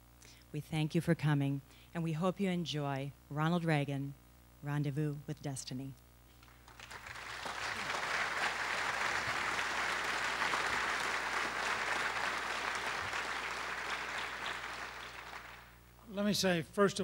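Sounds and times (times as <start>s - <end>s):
audience applauding: 6.4s - 15.8s.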